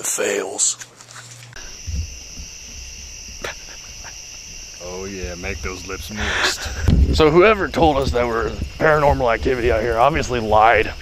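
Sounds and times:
crickets chirping: 0:00.0 - 0:11.0
low rumble: 0:01.6 - 0:11.0.

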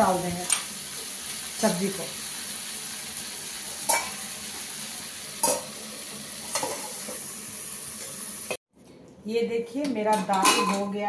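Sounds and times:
vegetables sizzling in a pan: 0:00.0 - 0:08.6.

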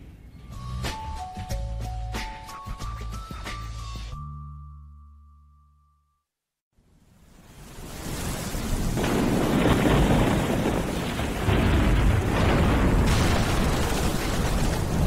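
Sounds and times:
heavy rain: 0:07.2 - 0:15.0
rumbling thunder: 0:07.9 - 0:15.0.

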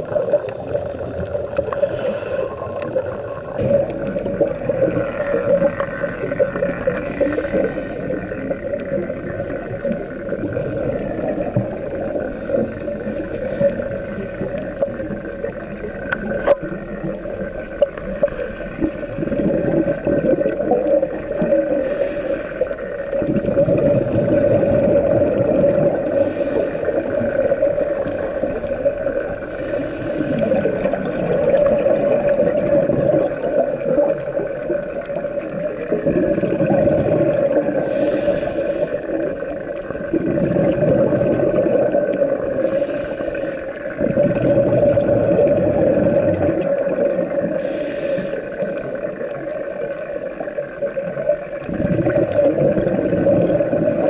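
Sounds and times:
scuba regulator breathing underwater: 0:00.0 - 0:54.0.

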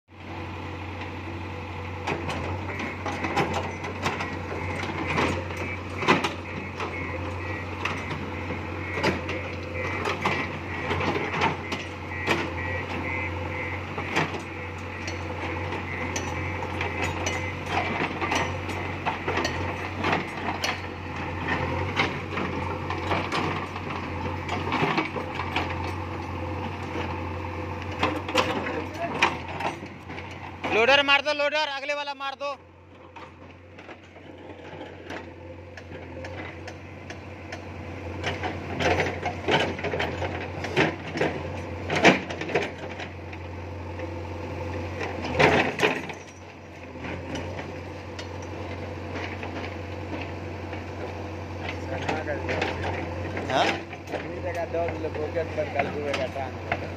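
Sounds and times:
diesel engine running: 0:00.1 - 0:56.9.

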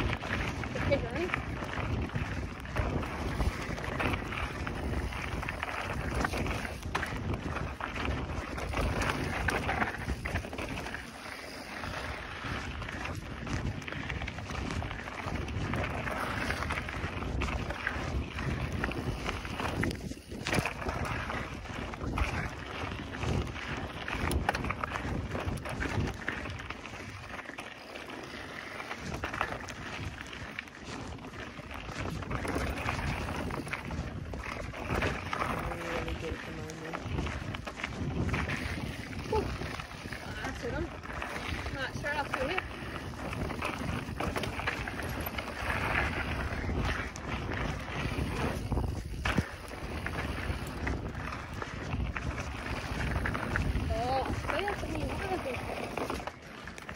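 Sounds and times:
bike rattling and knocking: 0:00.0 - 0:27.4, 0:28.0 - 0:56.9
wind buffeting microphone: 0:00.0 - 0:56.9
tyres rumbling on dirt: 0:34.7 - 0:56.9.

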